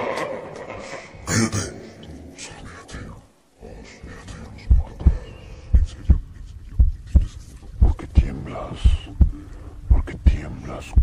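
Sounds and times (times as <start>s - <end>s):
heartbeat thumps: 4.6s - 11.0s.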